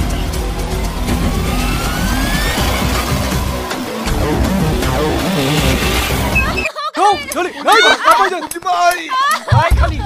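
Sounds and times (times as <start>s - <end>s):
motorcycle engine running: 0.1s - 6.6s
soundtrack with voice: 3.9s - 6.6s.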